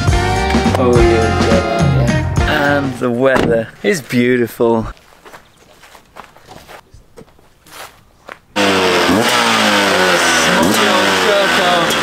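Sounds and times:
motorcycle engine revving: 8.6s - 12.0s.

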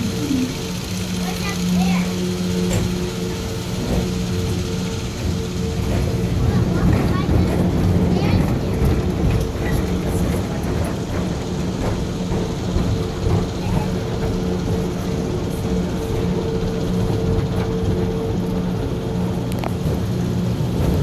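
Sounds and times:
low hum: 0.0s - 21.0s
roller coaster car rolling on track: 0.0s - 21.0s.

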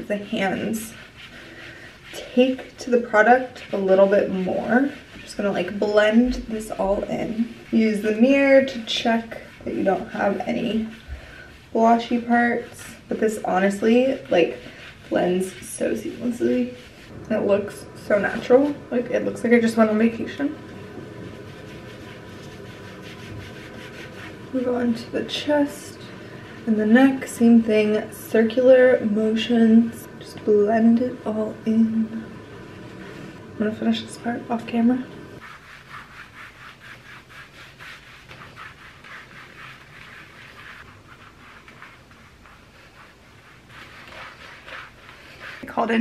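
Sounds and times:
background hiss: 0.0s - 46.0s
mitt rubbing on skin: 0.0s - 46.0s.

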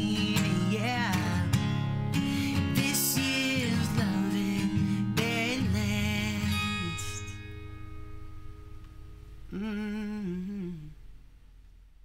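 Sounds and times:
acoustic guitar chord ringing: 0.0s - 9.8s
man humming: 9.5s - 11.1s.

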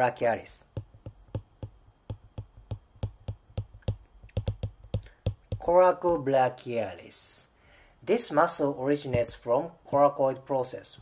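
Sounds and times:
stylus clicking on glass screen: 0.8s - 5.7s.

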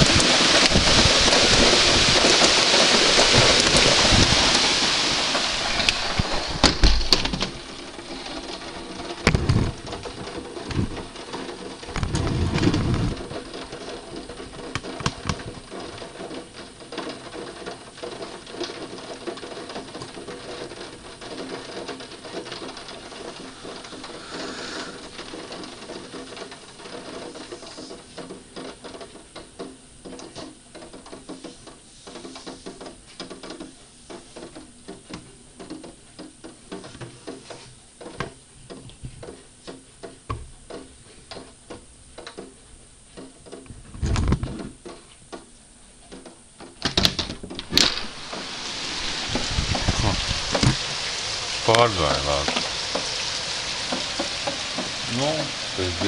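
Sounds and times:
rain tapping on a window: 0.0s - 56.0s.

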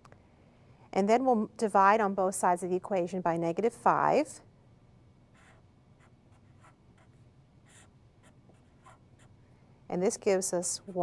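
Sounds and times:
felt-tip marker scratching: 5.4s - 9.4s.

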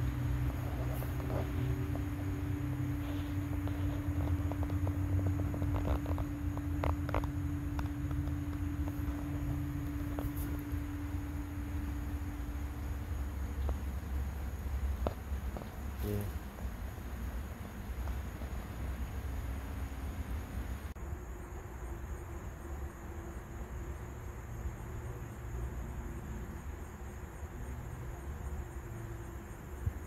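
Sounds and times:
low rumble: 0.0s - 15.4s
steady hum: 0.0s - 30.0s.

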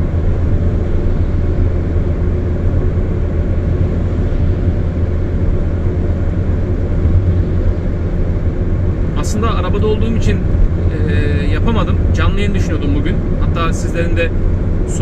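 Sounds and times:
car cabin road noise: 0.0s - 15.0s.

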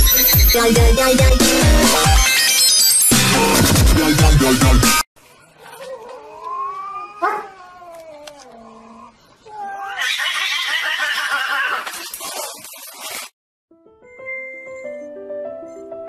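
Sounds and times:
cats yowling: 5.7s - 12.1s
cat screeching: 9.5s - 12.1s.

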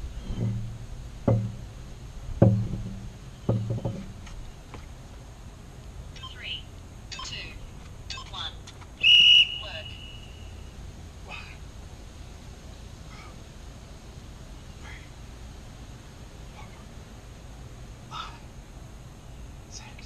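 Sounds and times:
heavy knocks: 0.0s - 4.4s
birds chirping: 0.0s - 12.5s, 14.4s - 20.0s.

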